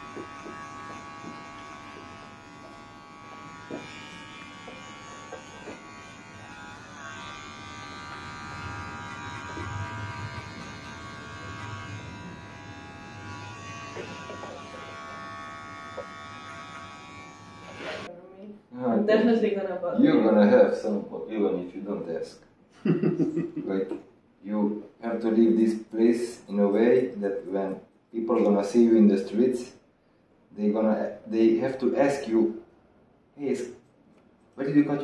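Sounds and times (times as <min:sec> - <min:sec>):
electric hair clippers buzzing: 0:00.0 - 0:18.1.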